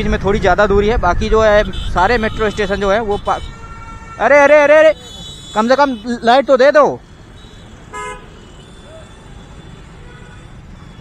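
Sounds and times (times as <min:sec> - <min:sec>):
road and engine rumble: 0:00.0 - 0:11.0
vehicle horn toot: 0:01.6 - 0:06.2, 0:07.3 - 0:11.0.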